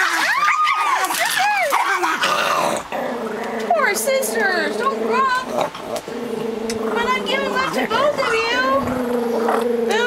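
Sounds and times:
small dog growling: 0.7s - 10.0s.

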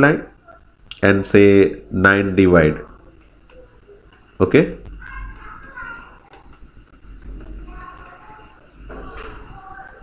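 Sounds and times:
faint voice murmuring: 7.2s - 10.0s.

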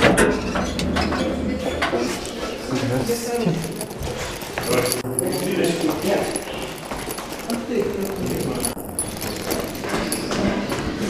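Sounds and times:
indistinct voices: 0.0s - 11.0s
keys jangling and clinking: 2.0s - 11.0s.

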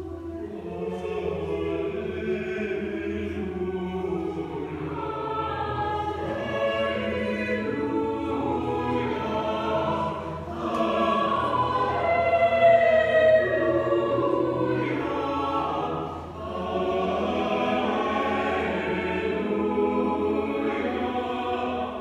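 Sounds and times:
church choir singing: 0.0s - 22.0s.

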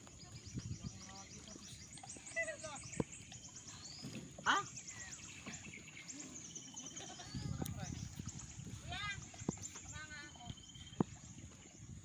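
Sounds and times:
people talking indistinctly: 0.0s - 11.2s.

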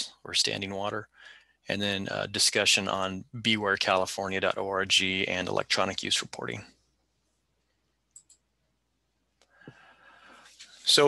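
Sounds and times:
faint mouse clicks: 7.7s - 8.5s.

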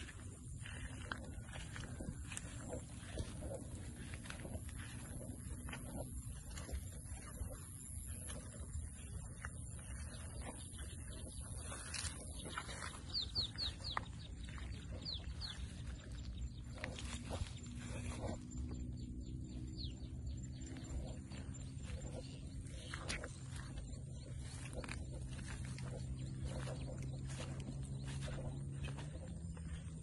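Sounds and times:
birds chirping: 0.0s - 30.0s
footsteps through dry grass: 0.0s - 30.0s
low steady drone: 0.0s - 30.0s.

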